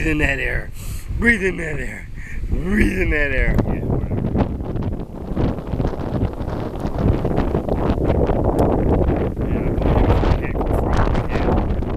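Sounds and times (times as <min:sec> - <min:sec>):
strong gusty wind on microphone: 0:00.0 - 0:11.9.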